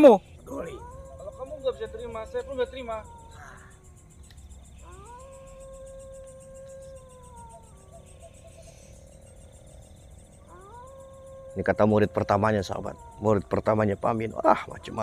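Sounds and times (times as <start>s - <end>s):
faint wailing tone: 0.4s - 15.0s.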